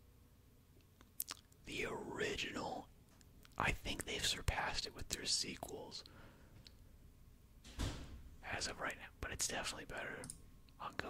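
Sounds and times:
man whispering: 1.2 - 2.9, 3.5 - 6.1, 8.4 - 11.0.

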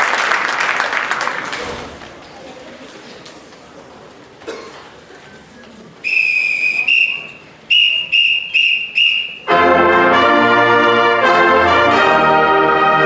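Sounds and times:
whistle blasts: 6.0 - 9.6
pep band of brass and drums: 7.8 - 13.0.

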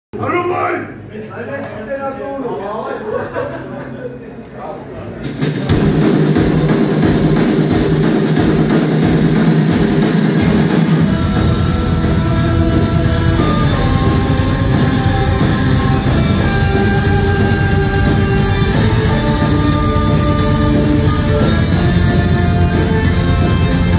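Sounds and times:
drum kit: 5.1 - 23.9
bass guitar and kick drum: 5.7 - 23.9
electric guitars: 5.8 - 23.9
long held melodic notes: 11.0 - 23.9.

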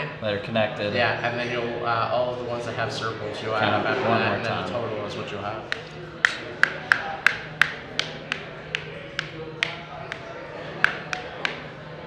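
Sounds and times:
marker tapping on game board: 5.7 - 11.7.

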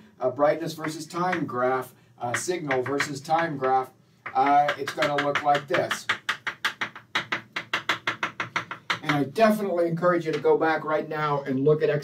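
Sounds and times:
chalk tapping on a chalkboard: 0.7 - 9.4, 10.2 - 10.6.

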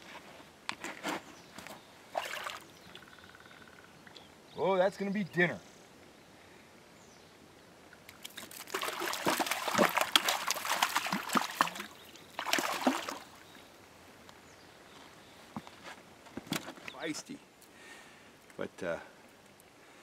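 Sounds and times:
fish splashing in shallow water: 2.1 - 2.8, 8.1 - 13.6.

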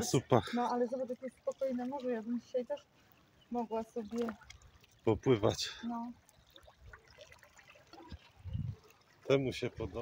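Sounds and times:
water lapping against rocks: 0.0 - 10.0.

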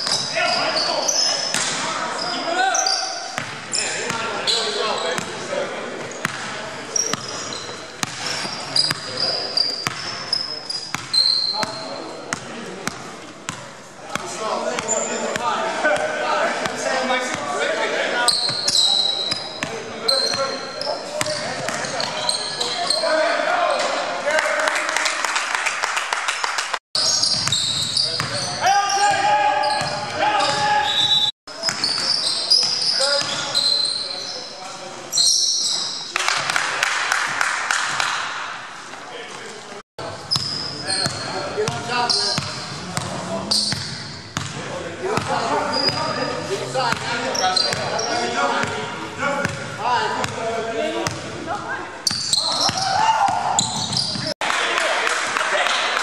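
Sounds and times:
players calling out: 0.0 - 13.2, 14.1 - 25.0, 27.0 - 36.4, 40.1 - 54.8
sneakers squeaking: 0.0 - 24.2, 27.0 - 36.2, 39.3 - 54.4.

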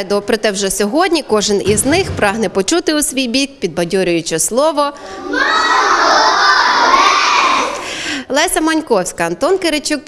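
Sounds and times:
children shouting in chorus: 5.2 - 7.8.

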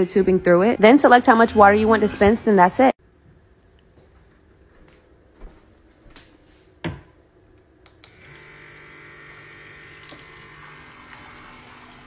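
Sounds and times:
electric pump whirring: 7.9 - 12.0.

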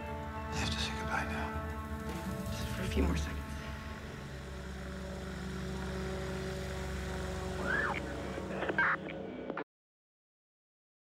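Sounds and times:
low droning soundtrack tones: 0.0 - 9.6.

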